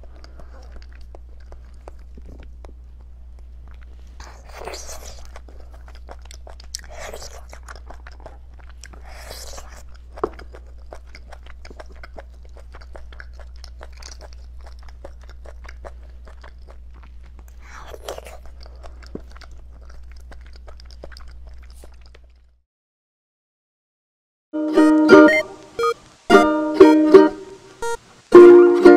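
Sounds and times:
wet chewing with mouth clicks: 0.0 - 22.6
sucking slurps: 3.8 - 20.1.

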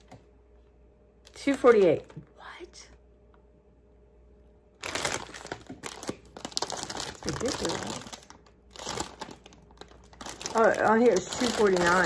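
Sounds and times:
plastic chip bag crinkling: 1.2 - 2.2, 4.8 - 12.0.

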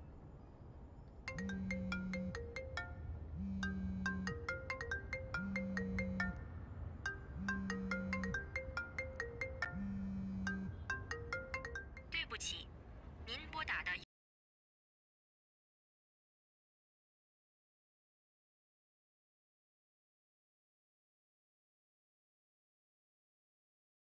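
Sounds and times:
low pulsing hum: 1.3 - 4.6, 5.3 - 8.6, 9.6 - 11.0
phone ringtone marimba melody: 1.3 - 12.2
recorded operator voice: 12.1 - 14.1.

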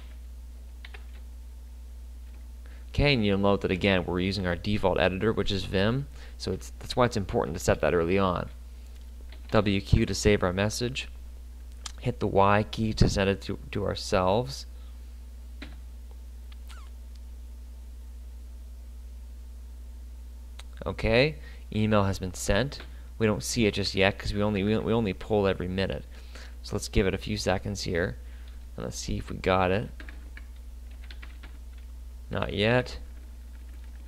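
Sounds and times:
low electrical hum: 0.0 - 34.0
computer keyboard typing: 0.8 - 1.2, 30.0 - 31.9, 33.1 - 34.0
faint squeaky chirps: 16.6 - 17.0.

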